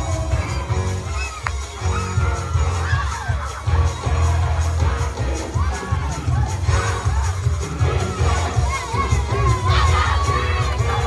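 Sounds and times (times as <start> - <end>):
congregation shouting and cheering: 0.0 - 11.0
fast gospel music: 0.0 - 11.0
high shout: 0.9 - 4.6, 5.4 - 11.0.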